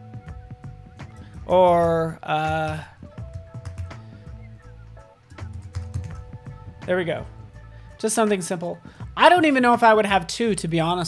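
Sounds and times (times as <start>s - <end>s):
soft background music: 0.0s - 11.0s
typing on computer keyboard: 3.5s - 4.0s, 5.4s - 6.2s.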